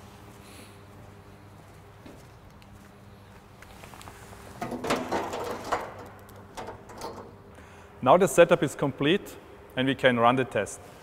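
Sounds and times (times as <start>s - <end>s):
low electrical hum: 0.0s - 11.0s
clattering and scraping on metal: 4.5s - 7.4s.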